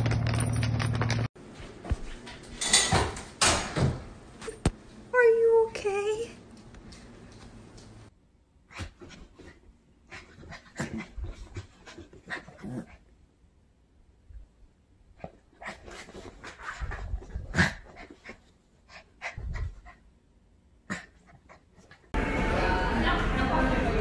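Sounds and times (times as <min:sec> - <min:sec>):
dog panting and snuffling: 0:15.2 - 0:20.0.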